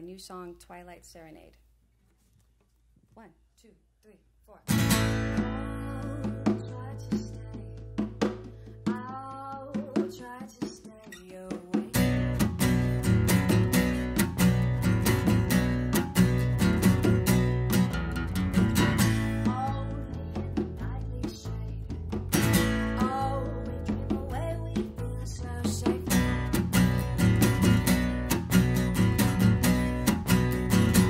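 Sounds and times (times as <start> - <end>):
strummed acoustic guitars: 4.7 - 31.0
woman singing: 5.2 - 12.4, 19.0 - 26.6, 29.4 - 30.3.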